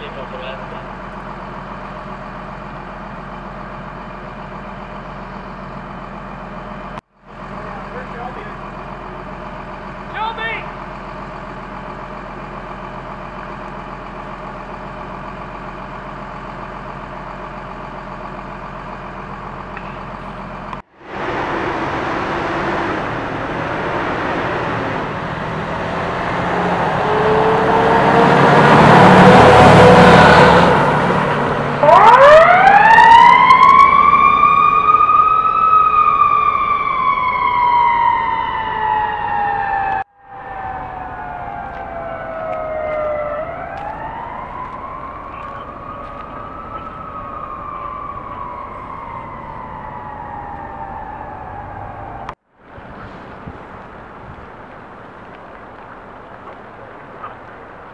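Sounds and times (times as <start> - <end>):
fire engines idling: 0.0 - 28.2, 29.0 - 57.9
fire engine passing: 0.0 - 57.9
siren wailing: 21.1 - 52.4.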